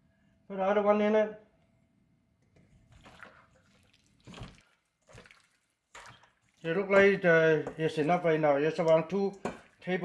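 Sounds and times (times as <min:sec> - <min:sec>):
wet squelching of mixing food: 0:02.8 - 0:10.0.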